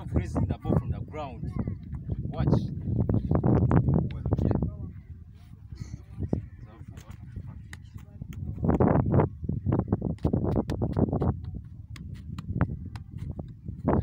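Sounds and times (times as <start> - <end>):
foot tapping football: 10.1 - 14.0.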